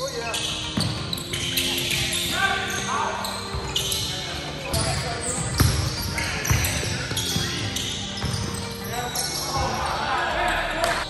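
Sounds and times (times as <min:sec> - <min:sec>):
basketball bouncing on hardwood floor: 0:05.4 - 0:05.9, 0:08.2 - 0:08.5.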